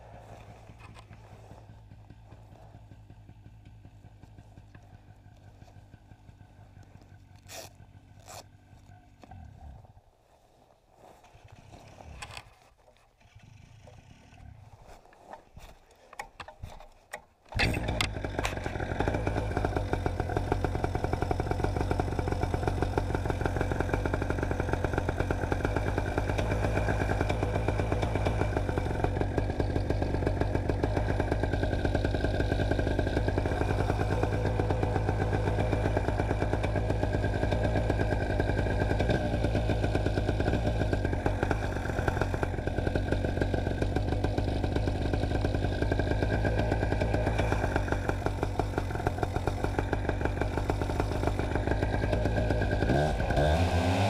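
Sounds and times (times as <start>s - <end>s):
paramotor engine idling: 0.0s - 10.0s, 17.5s - 54.0s.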